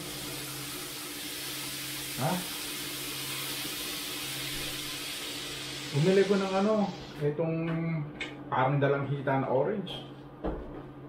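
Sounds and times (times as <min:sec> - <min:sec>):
tap water running into sink: 0:00.0 - 0:07.2.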